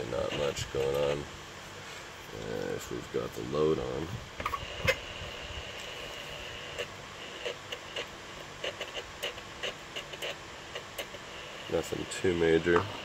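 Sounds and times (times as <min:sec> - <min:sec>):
electrical clicks and crackles: 0:00.0 - 0:01.3, 0:04.4 - 0:13.0
high-pitched whine: 0:00.0 - 0:13.0.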